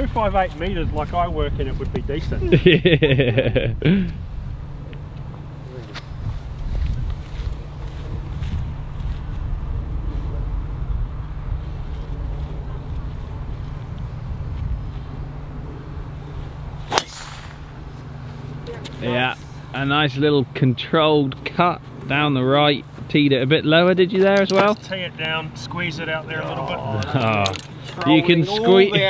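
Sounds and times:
low wind rumble on microphone: 0.0s - 18.7s
golf ball struck by driver: 16.8s - 18.2s.

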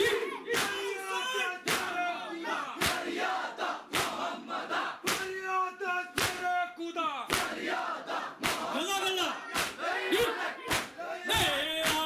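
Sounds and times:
chest slaps in steady beat: 0.0s - 1.0s, 1.6s - 5.4s, 6.1s - 6.6s, 7.2s - 8.9s, 9.5s - 12.0s
men chanting: 0.0s - 6.4s, 7.3s - 12.0s.

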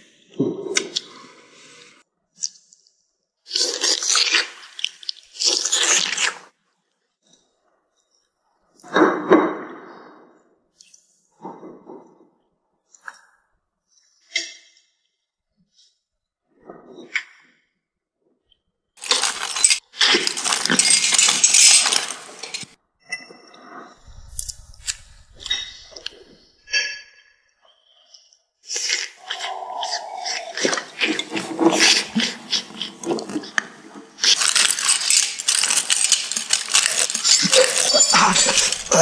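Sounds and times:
glass crunching and clinking: 19.0s - 23.4s, 24.0s - 26.8s, 34.2s - 39.0s
ceramic plate being chewed: 36.5s - 39.0s.

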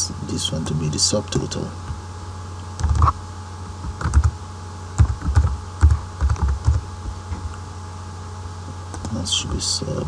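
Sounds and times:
low steady hum: 0.0s - 10.0s
computer keyboard typing: 2.8s - 3.2s, 3.8s - 4.4s, 5.0s - 6.8s.

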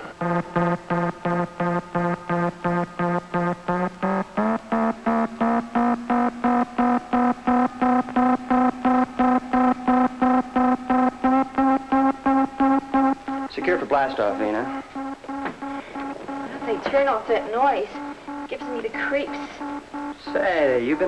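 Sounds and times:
pulsing electronic tone rising: 0.2s - 21.0s.

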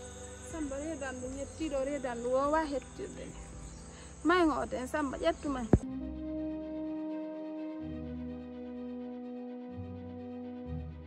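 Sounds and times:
insects chirring: 0.0s - 5.8s.

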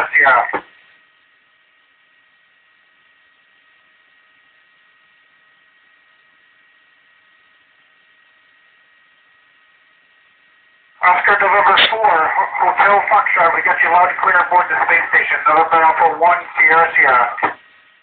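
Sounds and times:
radio static hiss: 0.0s - 18.0s.

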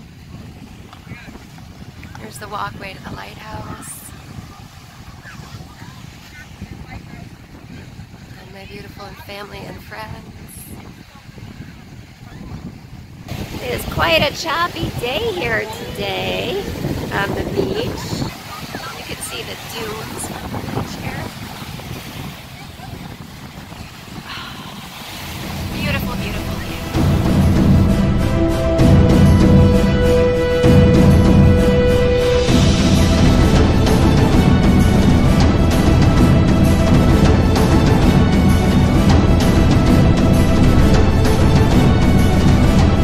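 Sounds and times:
small waves breaking on sand: 0.0s - 27.7s
wind buffeting microphone: 0.0s - 43.0s
people's voices: 2.0s - 12.5s, 13.4s - 27.8s.

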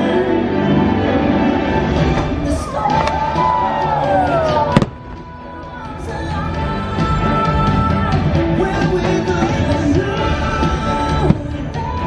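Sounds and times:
firework bang: 4.7s - 5.2s.

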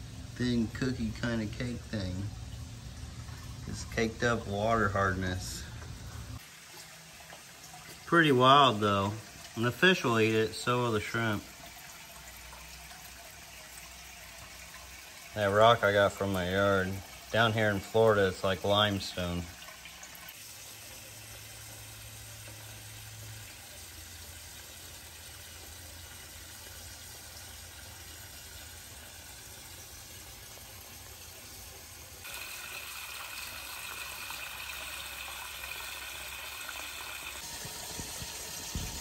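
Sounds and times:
low steady hum: 0.0s - 12.3s
water running from a hose: 0.0s - 39.0s.

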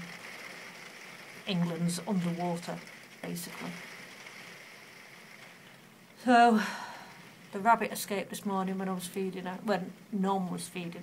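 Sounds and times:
faint rain hiss: 0.0s - 11.0s.

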